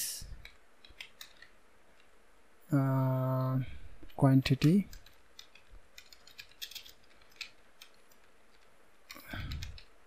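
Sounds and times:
keyboard keystrokes: 4.6 - 9.9.

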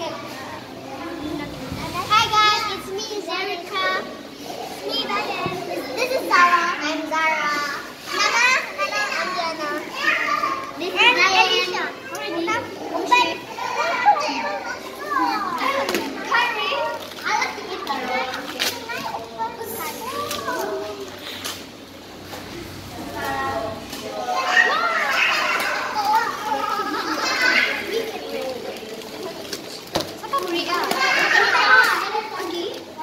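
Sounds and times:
children talking and calling out: 0.0 - 33.0.

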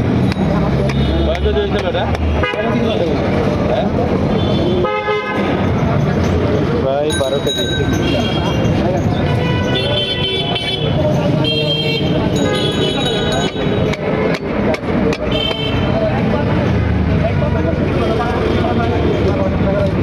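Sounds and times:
passing vehicles: 0.0 - 20.0
voices: 0.0 - 20.0.

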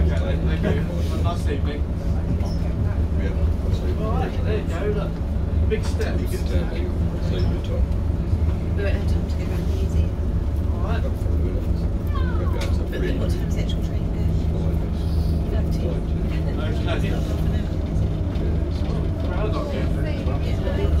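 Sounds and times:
bus diesel engine idling: 0.0 - 21.0
passengers chatting: 0.0 - 21.0.

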